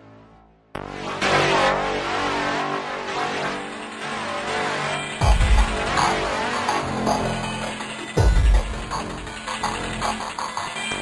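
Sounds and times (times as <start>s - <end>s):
electronic synth music: 0.0s - 11.0s.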